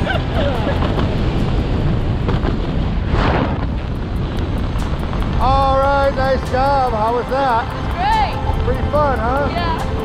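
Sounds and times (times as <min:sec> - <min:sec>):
wind rushing on microphone: 0:00.0 - 0:10.0.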